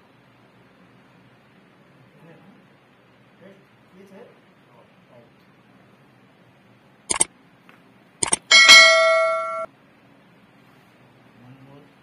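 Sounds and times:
bright bell ding: 8.2 - 9.7.

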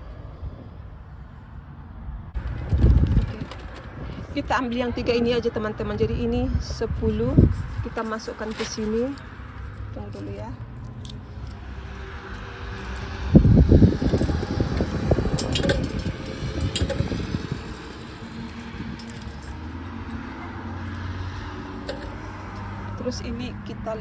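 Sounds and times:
low handling rumble: 2.3 - 23.4
coins clinking into metal box: 14.0 - 17.6, 18.4 - 19.8, 21.8 - 22.2.

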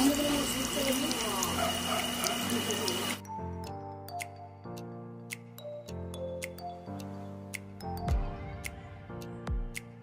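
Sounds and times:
food deep-frying in hot oil: 0.0 - 3.2.

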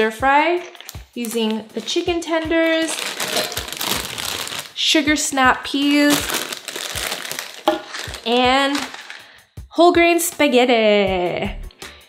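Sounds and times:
plastic bag crinkling: 0.6 - 9.3.

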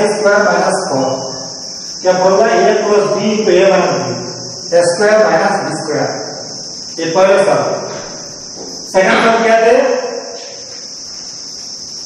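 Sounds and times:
man speaking: 0.0 - 1.2, 2.0 - 6.3, 7.0 - 7.9, 8.9 - 10.4
high-pitched hiss: 0.0 - 12.0.

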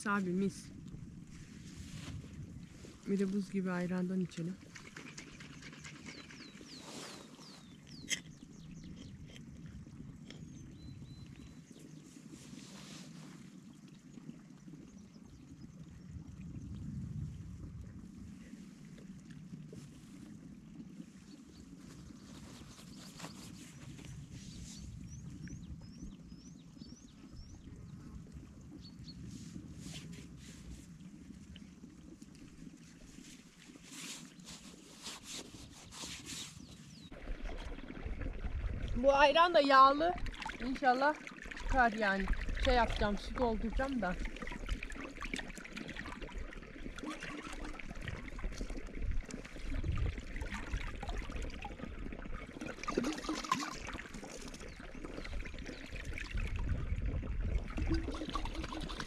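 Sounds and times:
faint bird chirps: 5.5 - 9.2.

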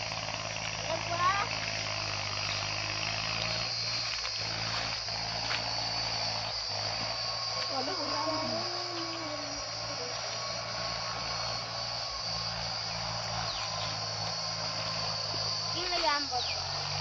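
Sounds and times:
high-pitched insect drone: 0.0 - 17.0.

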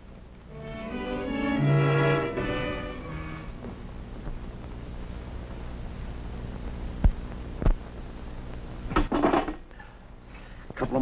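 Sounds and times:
film soundtrack hum and hiss: 0.0 - 11.0.

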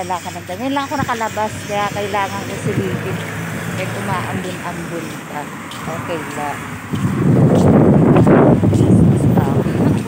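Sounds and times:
person talking: 0.0 - 10.0.

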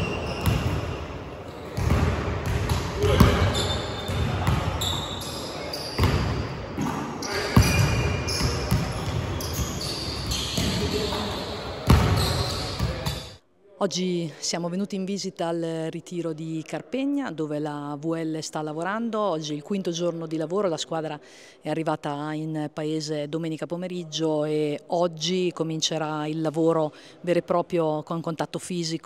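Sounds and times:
basketballs bouncing on hardwood floor: 0.4 - 0.8, 1.8 - 4.9, 6.0 - 7.0, 7.6 - 11.3, 11.9 - 13.2
players' voices: 1.3 - 13.3.

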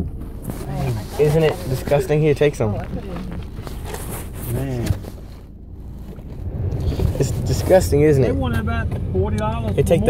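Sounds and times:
car rumble from inside cabin: 0.0 - 10.0.

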